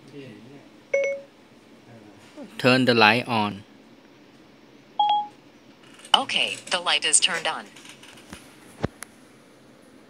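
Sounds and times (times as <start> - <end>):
short electronic beep: 5.0 - 5.3.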